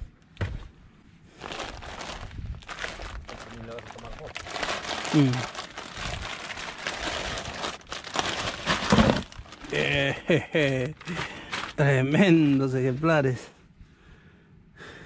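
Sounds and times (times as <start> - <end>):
mesh net rustling: 1.4 - 9.8
plastic bag crinkling: 1.4 - 12.0
person humming: 5.1 - 5.5
fish tipped into plastic cooler: 8.6 - 9.4.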